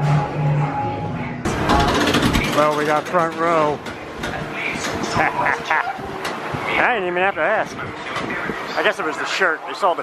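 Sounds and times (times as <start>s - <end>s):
roller coaster mechanical noise: 0.0s - 10.0s.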